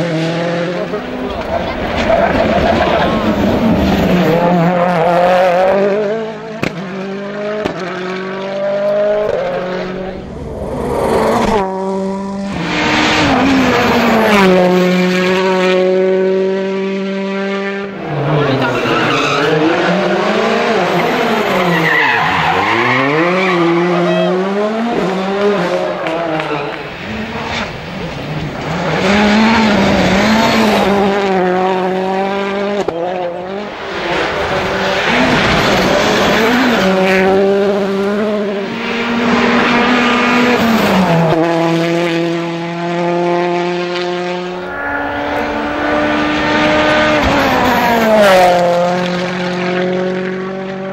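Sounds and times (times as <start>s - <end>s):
rally car engines revving: 0.0s - 50.9s.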